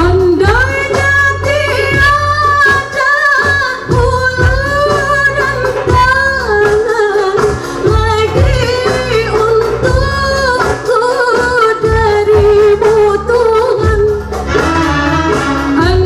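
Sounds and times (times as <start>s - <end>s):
keyboards: 0.0s - 16.0s
woman singing: 0.0s - 16.0s.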